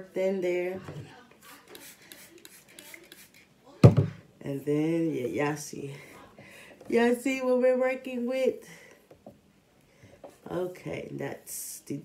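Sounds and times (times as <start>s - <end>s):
fingers rubbing wet hair: 1.4s - 3.5s.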